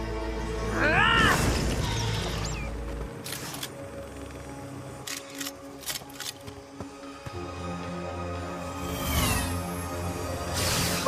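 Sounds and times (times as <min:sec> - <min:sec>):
sustained background music: 0:00.0 - 0:11.0.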